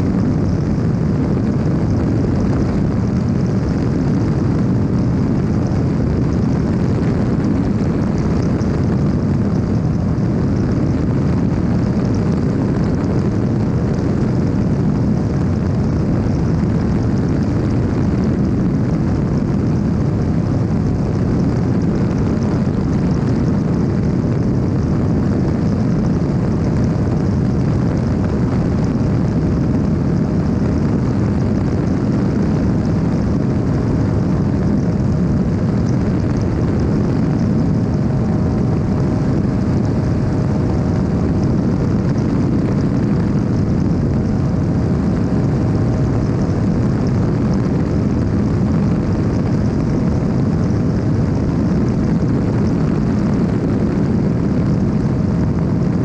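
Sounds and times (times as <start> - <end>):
engine and propeller drone: 0.0 - 56.0
rushing wind: 0.0 - 56.0.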